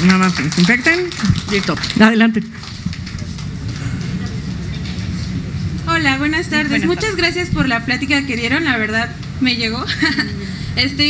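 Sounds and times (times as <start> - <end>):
low rumble of background noise: 0.0 - 11.0.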